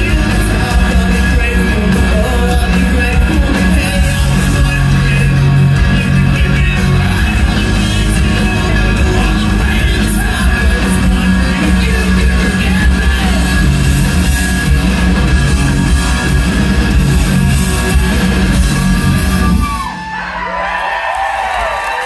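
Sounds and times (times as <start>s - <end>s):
live rock band playing: 0.0s - 20.5s
crowd whooping: 15.6s - 22.0s.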